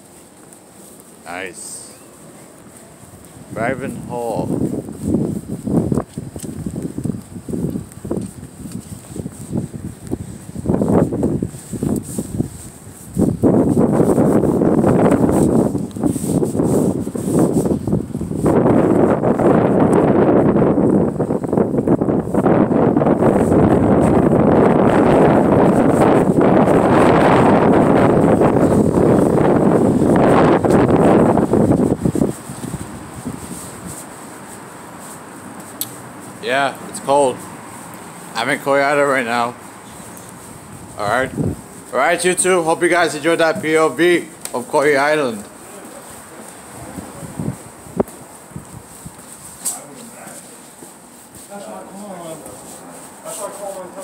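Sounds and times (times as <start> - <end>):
handling rubbing on microphone: 0.0 - 54.0
wind buffeting phone microphone: 2.6 - 34.6, 35.9 - 49.6.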